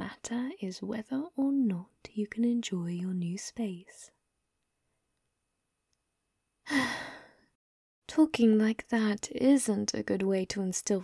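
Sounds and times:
woman sighing: 6.7 - 7.4.

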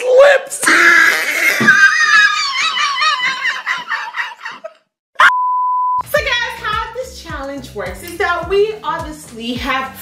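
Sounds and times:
steady beep tone: 5.2 - 6.0.

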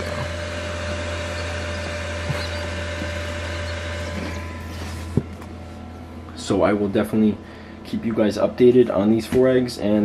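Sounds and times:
incubator humming: 0.0 - 10.0.

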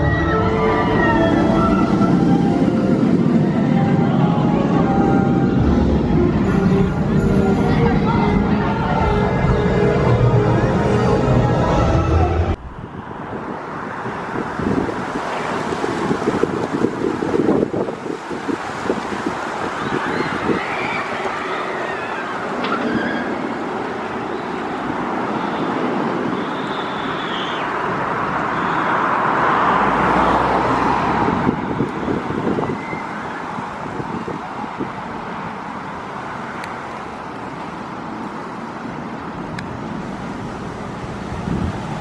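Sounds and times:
outdoor rumble and hiss: 12.1 - 42.0.

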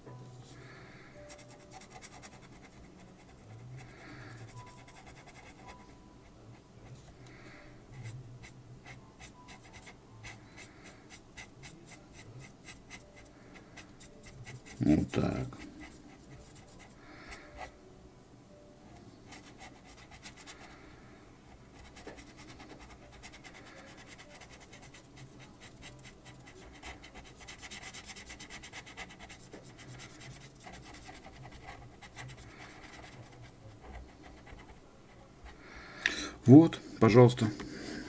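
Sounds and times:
felt-tip pen scratching on paper: 1.3 - 5.9, 7.9 - 17.7, 19.3 - 20.8, 21.7 - 35.6.

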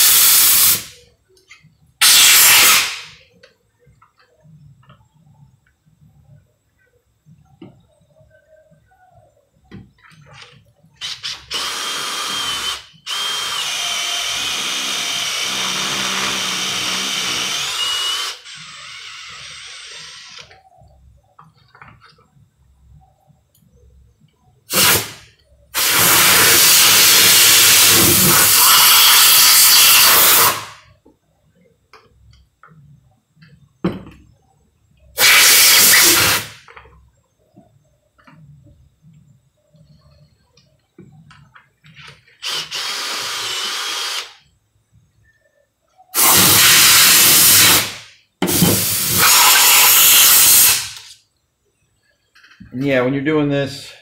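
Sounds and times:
compressed air blasts: 0.0 - 0.9, 2.0 - 3.2, 24.7 - 30.8, 35.2 - 36.6, 46.2 - 51.1
cordless drill whining: 11.0 - 20.5, 42.4 - 44.4.

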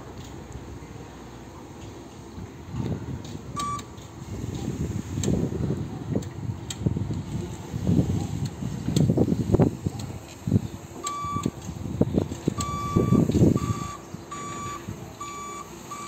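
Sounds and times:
short electronic beep: 3.6 - 3.8, 12.6 - 16.0.

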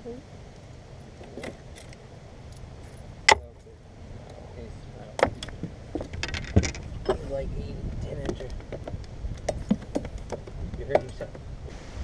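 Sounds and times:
low steady rumble: 0.0 - 12.0
knocks and metallic clinks: 0.5 - 3.7, 5.2 - 7.2.

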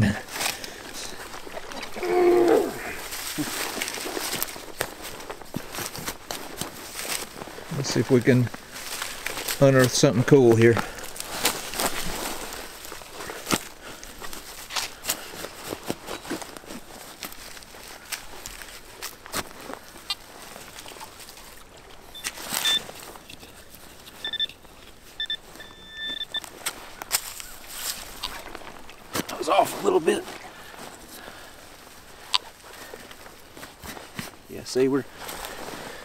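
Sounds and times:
leaves crackling: 0.0 - 36.0
short electronic beeps: 22.1 - 22.9, 24.2 - 24.6, 25.2 - 26.4.

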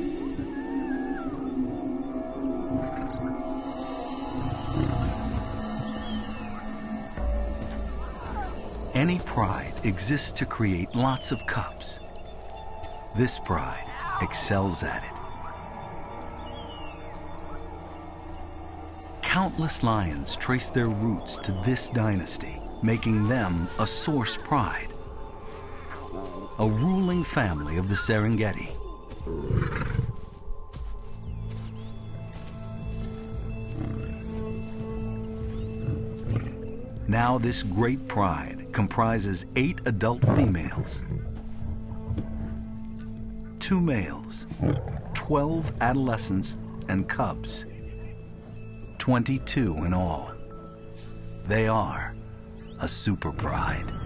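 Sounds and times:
documentary music score: 0.0 - 54.0
lion growling: 35.8 - 36.7, 40.2 - 42.6, 44.5 - 45.3
lion growling roar: 44.6 - 45.2.

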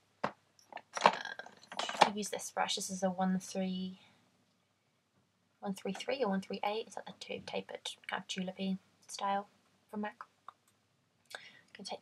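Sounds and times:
makeup items clicking: 0.2 - 2.2
person breathing: 11.3 - 11.8.

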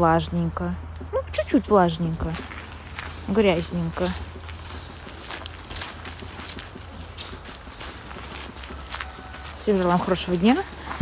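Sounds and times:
footsteps on leafy dirt path: 0.6 - 11.0.

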